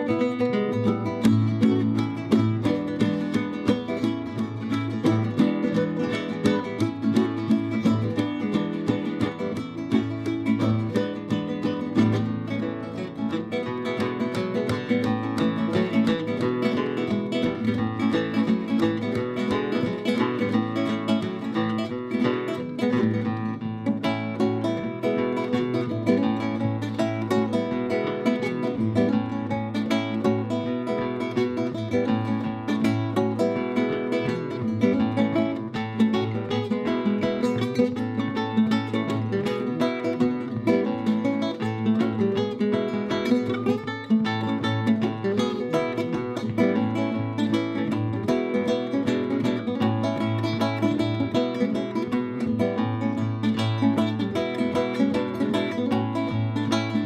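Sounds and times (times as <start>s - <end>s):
flamenco guitar fingerpicking: 0.0s - 57.0s.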